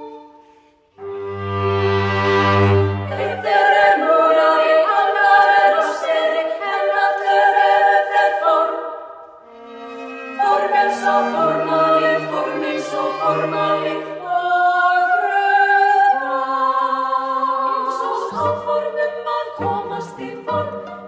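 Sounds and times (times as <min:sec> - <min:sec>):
women's choir singing chords: 0:02.0 - 0:21.0.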